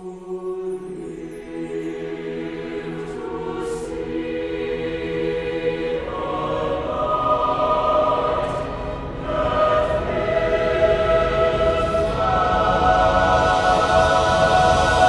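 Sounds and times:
choir singing sustained chords: 0:00.0 - 0:15.0.

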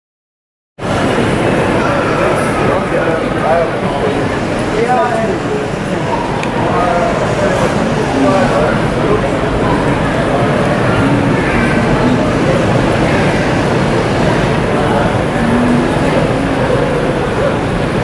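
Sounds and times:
indistinct voices: 0:00.8 - 0:18.0
traffic noise: 0:00.8 - 0:18.0.

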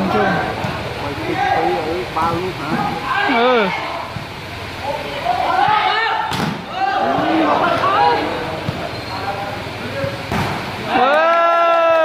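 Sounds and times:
crowd shouting and calling out: 0:00.0 - 0:12.0
volleyball smack: 0:05.6 - 0:07.9, 0:10.3 - 0:10.7.

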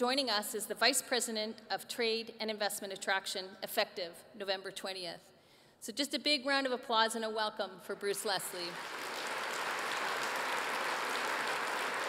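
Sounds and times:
large audience applauding: 0:08.7 - 0:12.0.

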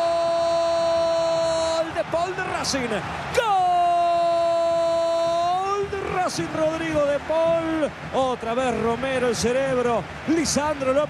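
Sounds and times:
man shouting goal: 0:00.0 - 0:09.3.

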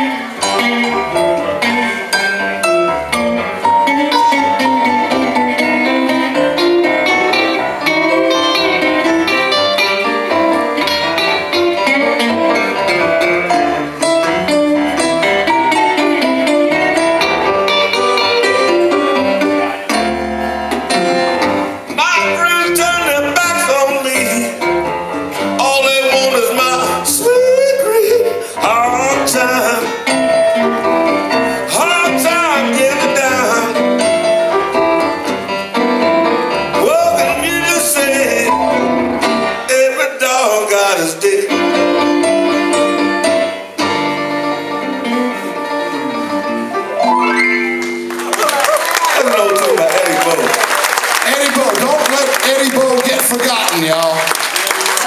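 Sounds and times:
electric bass guitar: 0:00.0 - 0:23.3
electric keyboard chords: 0:00.0 - 0:40.2, 0:41.5 - 0:48.7
acoustic guitar: 0:00.0 - 0:48.3
small live band playing: 0:00.0 - 0:55.0
person singing: 0:21.9 - 0:24.6, 0:25.4 - 0:30.4, 0:31.3 - 0:34.1, 0:36.8 - 0:38.8.

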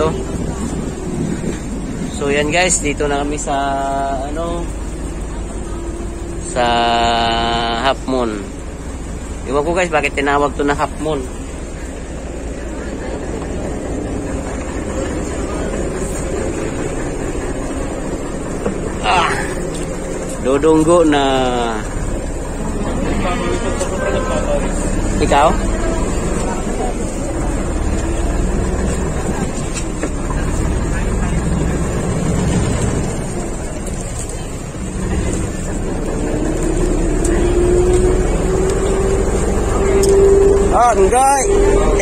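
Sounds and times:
water against hull: 0:00.0 - 0:03.5, 0:08.5 - 0:21.2, 0:21.8 - 0:42.0
boat engine running: 0:00.0 - 0:42.0
rising whine: 0:04.1 - 0:42.0.

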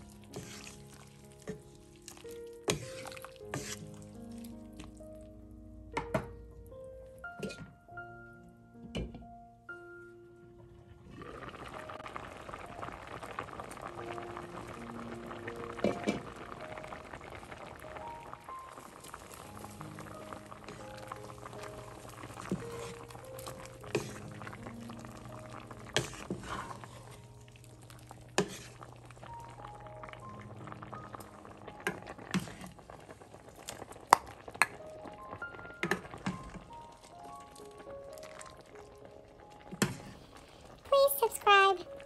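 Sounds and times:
soup boiling and bubbling: 0:00.0 - 0:07.6, 0:10.5 - 0:42.0.

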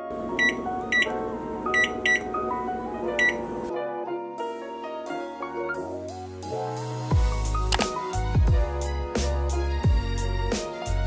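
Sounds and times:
microwave keypad beeping: 0:00.0 - 0:03.7.

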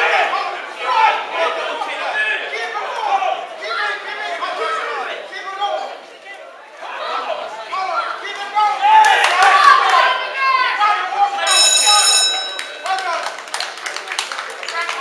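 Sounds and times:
spectators shouting and cheering: 0:00.0 - 0:06.0, 0:06.8 - 0:14.0
ringside bell ringing: 0:11.5 - 0:13.2.

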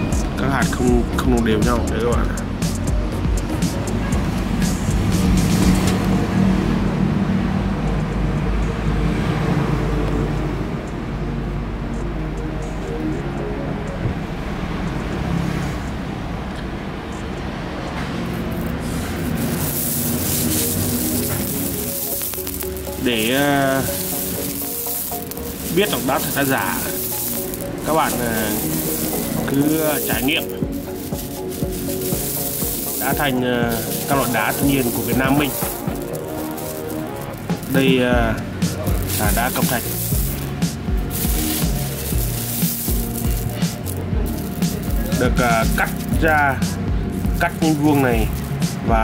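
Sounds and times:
background music: 0:00.0 - 0:49.0
marble chips clattering by hand: 0:18.3 - 0:46.2, 0:47.1 - 0:48.8
pebbles rattling and clinking: 0:18.3 - 0:46.4, 0:47.1 - 0:48.9.

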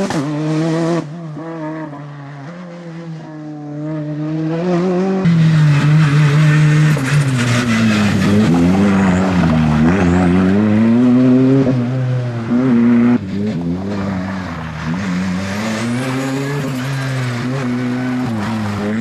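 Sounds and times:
rally car engine revving hard: 0:00.0 - 0:19.0.

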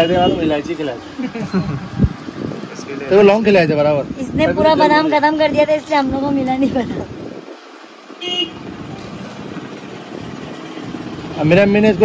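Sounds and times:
street traffic noise: 0:00.0 - 0:12.0.

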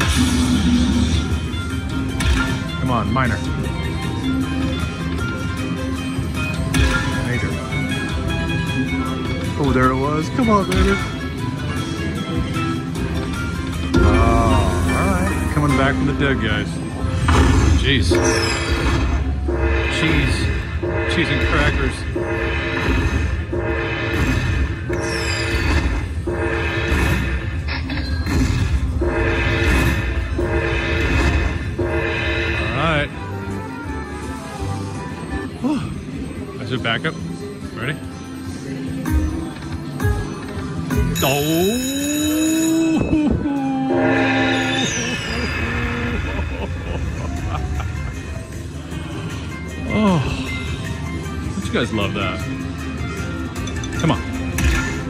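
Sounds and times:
slot machine win music: 0:00.0 - 0:43.1, 0:43.8 - 0:55.0.

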